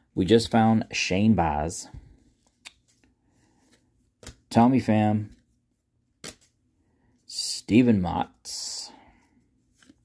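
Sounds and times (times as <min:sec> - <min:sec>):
cards being thumbed through: 0:06.2 - 0:06.6.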